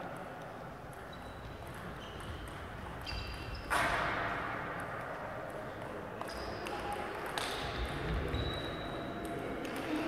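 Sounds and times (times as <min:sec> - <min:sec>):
shoes squeaking on floor: 0:01.1 - 0:03.9, 0:08.3 - 0:09.1.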